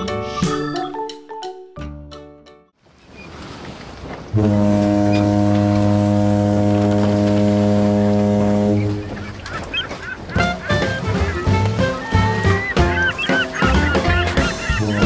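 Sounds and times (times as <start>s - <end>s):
ship horn low blast: 4.3s - 9.2s
music with sliding notes: 10.4s - 15.0s.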